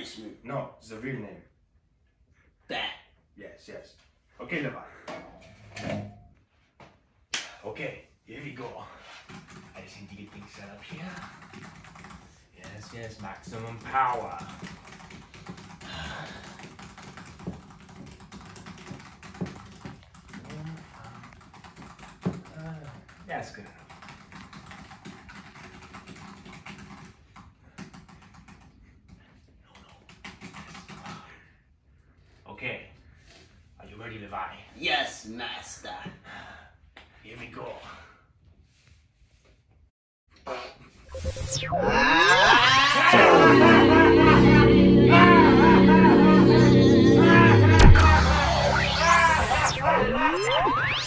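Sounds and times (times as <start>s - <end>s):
loud layered tone: 41.1s - 51.0s
rising whine: 41.1s - 51.0s.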